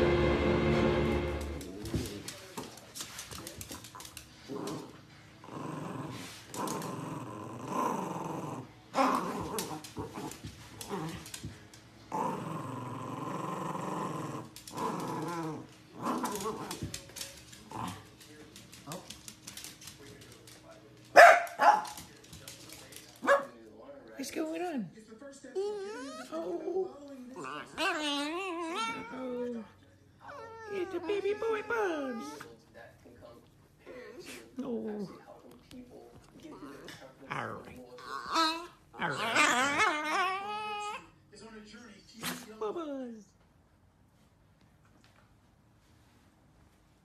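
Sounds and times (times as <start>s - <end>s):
small dog growling and snarling: 4.4s - 11.4s, 12.1s - 16.8s, 17.6s - 18.2s, 25.6s - 29.7s, 36.5s - 41.0s.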